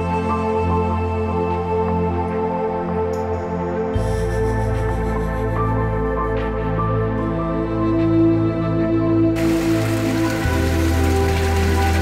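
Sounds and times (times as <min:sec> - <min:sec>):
slow ambient music: 0:00.0 - 0:12.0
water splashing onto rocks: 0:09.4 - 0:12.0.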